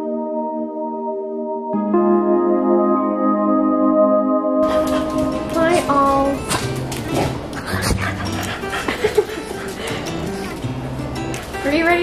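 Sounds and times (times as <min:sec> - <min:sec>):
background music: 0:00.0 - 0:12.0
dog vocalising: 0:06.4 - 0:10.4.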